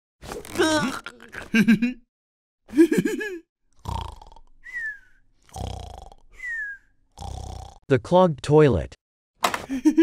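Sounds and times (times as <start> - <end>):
laugh: 1.1 - 2.0, 2.7 - 3.4, 9.6 - 10.0
cartoon snoring with whistle: 3.8 - 7.9.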